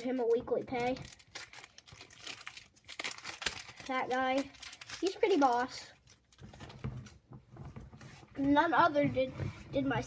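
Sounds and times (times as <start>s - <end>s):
plastic packaging crinkling: 0.0s - 7.2s.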